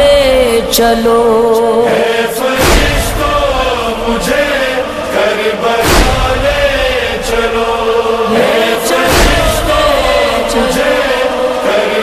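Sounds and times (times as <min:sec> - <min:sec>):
person chanting a lament: 0:00.0 - 0:12.0.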